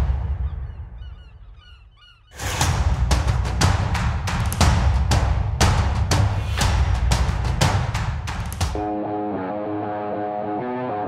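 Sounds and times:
flock of birds calling: 0:00.4 - 0:02.6.

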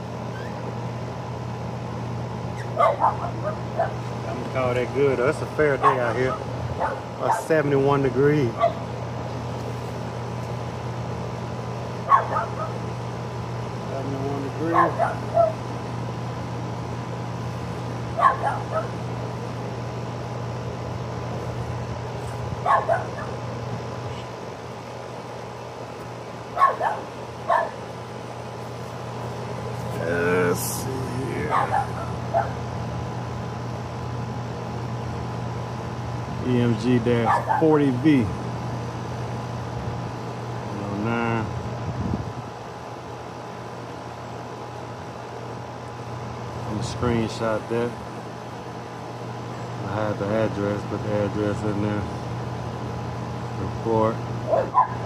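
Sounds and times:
air conditioner unit humming: 0:00.0 - 0:55.0
dog barking: 0:02.8 - 0:04.0, 0:05.8 - 0:07.5, 0:08.6 - 0:08.8, 0:12.1 - 0:12.8, 0:14.7 - 0:15.6, 0:18.2 - 0:19.0, 0:22.6 - 0:23.4, 0:26.6 - 0:27.8, 0:31.5 - 0:32.6, 0:37.2 - 0:37.7, 0:54.5 - 0:55.0.

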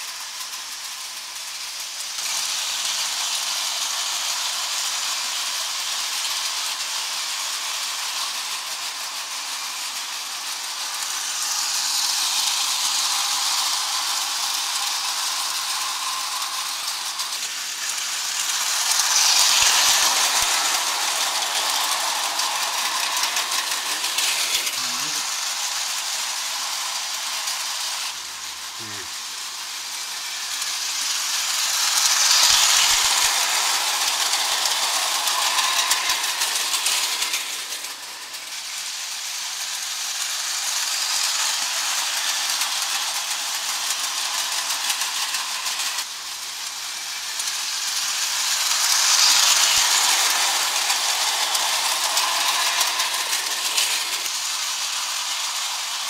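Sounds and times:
model train wheels rattling on rails: 0:00.0 - 0:56.0.

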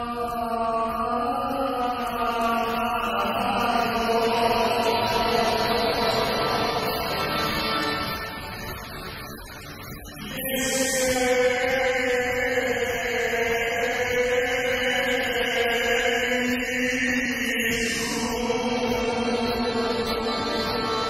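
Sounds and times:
man singing sustained note: 0:00.0 - 0:08.9, 0:10.0 - 0:21.0.

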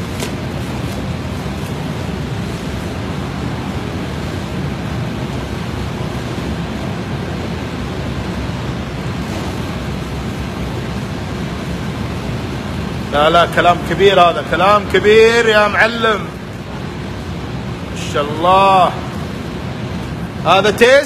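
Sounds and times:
kitchen background rushing noise: 0:00.0 - 0:14.7.

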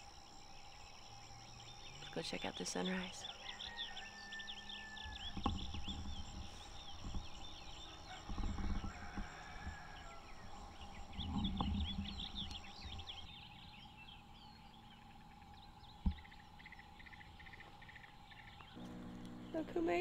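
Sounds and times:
birds chirping: 0:00.0 - 0:20.0
insect drone: 0:00.0 - 0:20.0.

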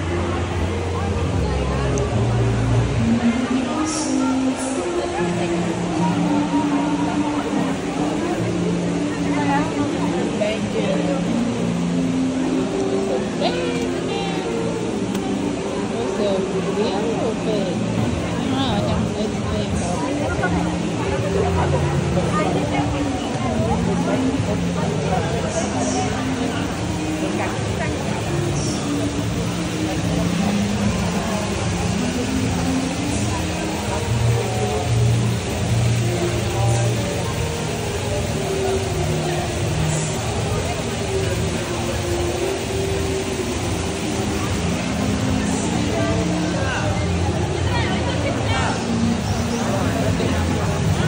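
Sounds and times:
murmur of voices: 0:00.0 - 0:51.0
waterfall rushing: 0:00.0 - 0:51.0.

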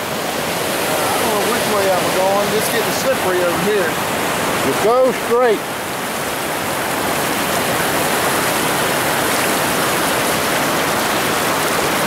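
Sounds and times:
river water rushing over rocks: 0:00.0 - 0:12.0.

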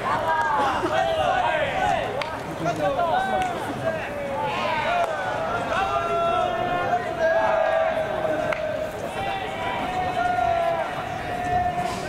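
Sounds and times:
young men shouting calls: 0:00.0 - 0:02.2, 0:02.8 - 0:12.0.

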